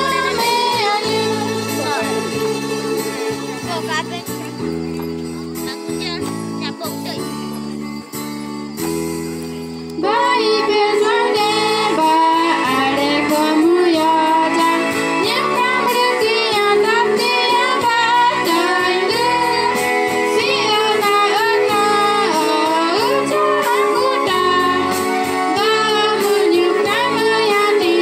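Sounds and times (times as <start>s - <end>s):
young female voices singing: 0.0s - 3.4s, 10.0s - 28.0s
amplified backing music: 0.0s - 28.0s.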